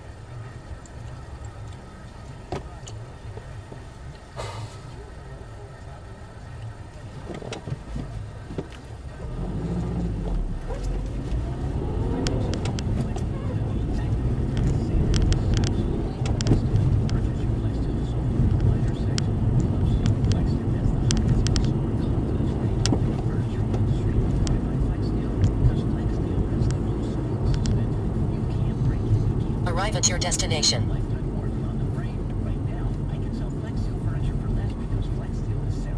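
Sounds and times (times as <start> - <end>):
car engine and tyre rumble: 0.0 - 35.9.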